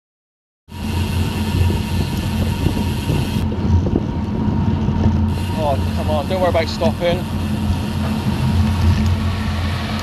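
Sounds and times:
wind and road noise while cycling: 0:00.7 - 0:10.0.

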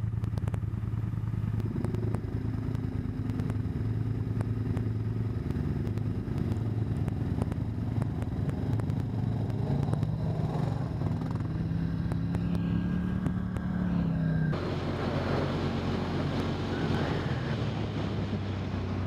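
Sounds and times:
atv engine revving: 0:00.0 - 0:19.0.

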